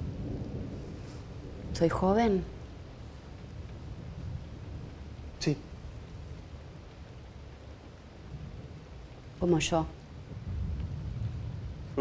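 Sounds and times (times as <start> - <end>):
low rumble: 0.0 - 12.0
steady rain: 0.0 - 12.0.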